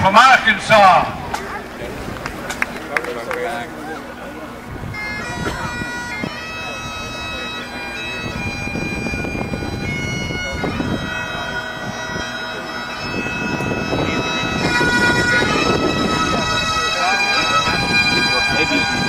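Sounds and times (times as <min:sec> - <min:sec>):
bagpipes playing a tune: 0:03.4 - 0:19.0.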